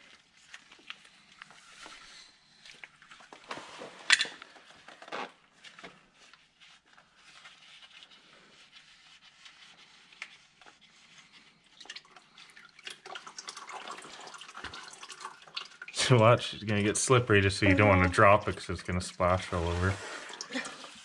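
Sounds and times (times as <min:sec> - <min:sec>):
oil dripping into drain pan: 0:11.8 - 0:16.0.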